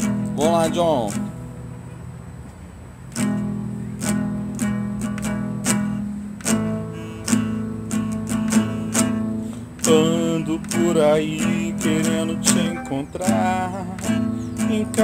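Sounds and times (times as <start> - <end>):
guitar strummed chords: 0.0 - 2.1, 3.1 - 15.0.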